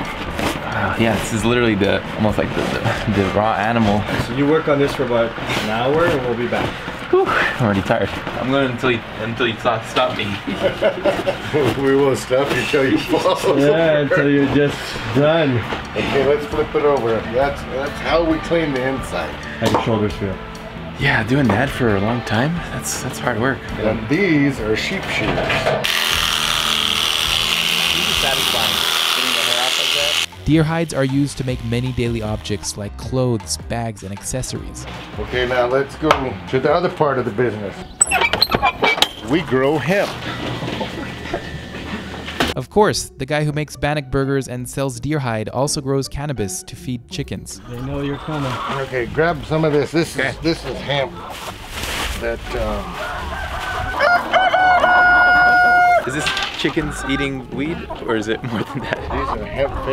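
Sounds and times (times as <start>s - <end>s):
electric shears buzzing: 25.8s - 30.4s, 31.5s - 32.6s
rooster crowing: 52.9s - 56.4s.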